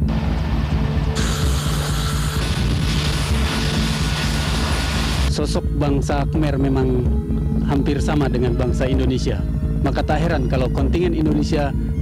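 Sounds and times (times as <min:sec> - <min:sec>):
heavy machinery engine noise: 0:00.0 - 0:05.3
background music: 0:00.0 - 0:12.0.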